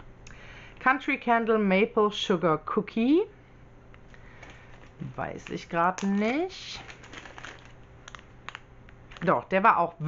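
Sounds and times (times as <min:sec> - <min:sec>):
plastic bag crinkling: 0:04.0 - 0:09.6.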